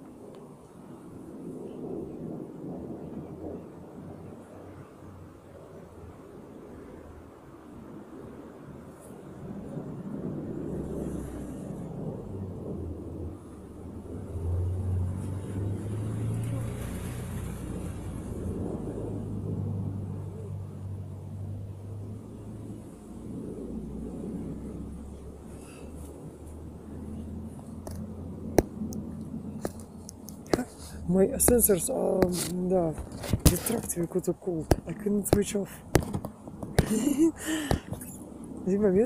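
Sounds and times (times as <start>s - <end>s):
engine rumbling: 9.2s - 39.0s.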